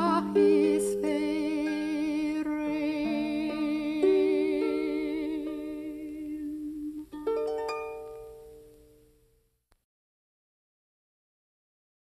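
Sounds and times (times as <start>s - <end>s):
woman singing with vibrato: 0.0s - 7.2s
harp: 0.0s - 9.3s.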